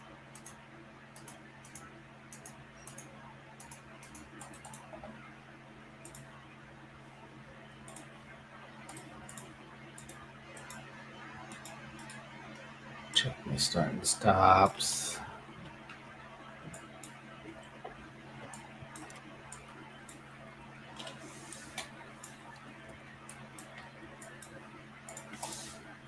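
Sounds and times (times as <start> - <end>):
low steady hum: 0.0 - 26.0
computer mouse clicks: 0.3 - 5.1, 6.0 - 6.3, 7.8 - 8.1, 8.9 - 10.8, 11.5 - 13.2, 18.4 - 20.2, 23.2 - 25.9.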